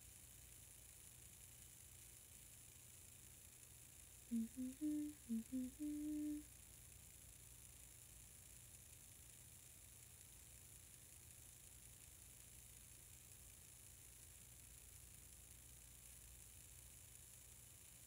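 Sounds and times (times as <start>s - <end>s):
woman humming a tune: 4.3s - 6.5s.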